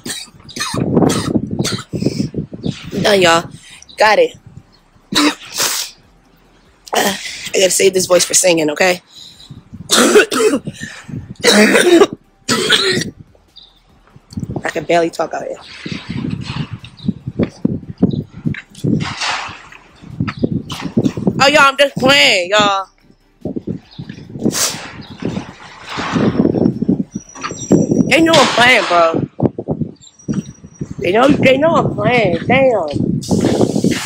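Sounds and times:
woman coughing: 0.0 - 2.2, 5.1 - 5.7, 9.9 - 13.1
passing traffic: 1.2 - 28.6.

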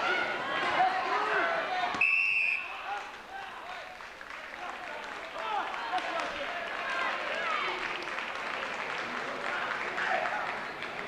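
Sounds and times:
crowd shouting and yelling: 0.0 - 4.0.

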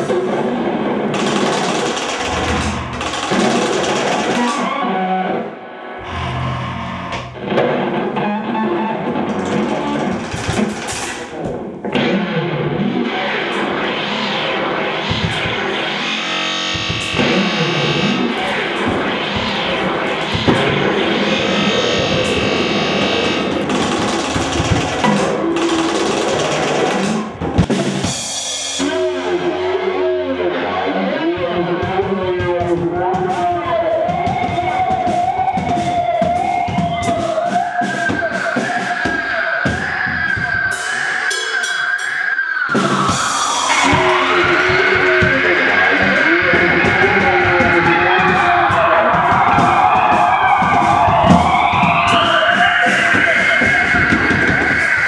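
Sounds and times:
rock drumming: 0.0 - 5.1, 5.9 - 55.0
electric guitar sliding notes: 2.2 - 3.7, 4.3 - 10.0, 13.6 - 24.6.

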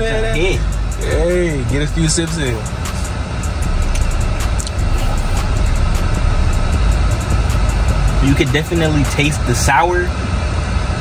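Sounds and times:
car engine idling: 0.0 - 11.0
ventilation hiss: 0.0 - 11.0.

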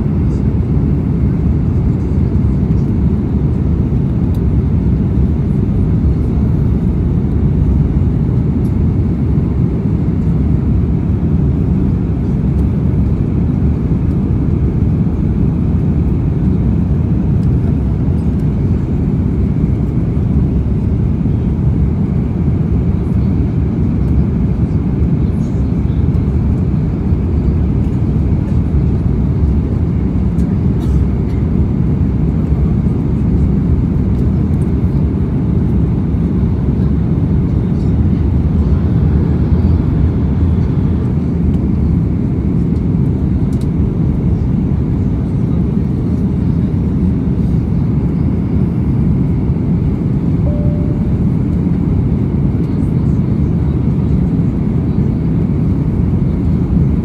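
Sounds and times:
airplane cabin engine roar: 0.0 - 57.0.

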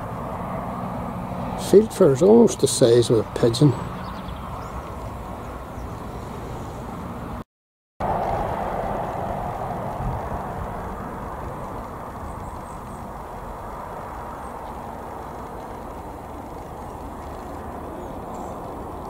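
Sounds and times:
distant traffic hum: 0.0 - 7.4, 8.0 - 19.0
vehicle passing: 0.0 - 7.4, 8.0 - 19.0.

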